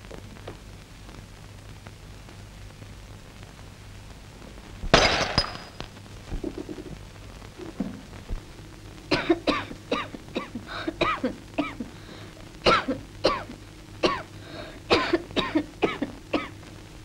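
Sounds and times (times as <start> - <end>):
woman coughing hard: 9.1 - 11.9, 12.7 - 14.3, 14.9 - 16.5.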